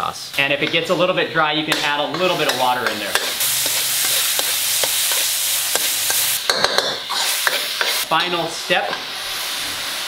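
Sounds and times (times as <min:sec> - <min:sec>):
chicken sizzling in a wok: 0:01.0 - 0:10.0
metal spatula scraping a pan: 0:01.7 - 0:09.0.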